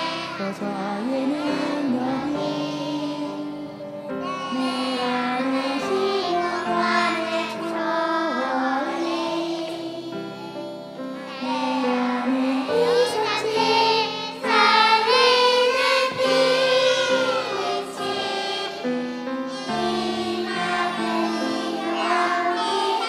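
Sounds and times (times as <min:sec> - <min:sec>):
children's choir singing: 0:00.0 - 0:23.0.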